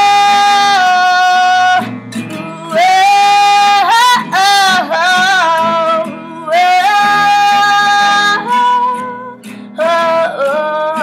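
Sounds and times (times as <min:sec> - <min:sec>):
acoustic guitar: 0:00.0 - 0:11.0
woman singing long notes: 0:00.0 - 0:11.0.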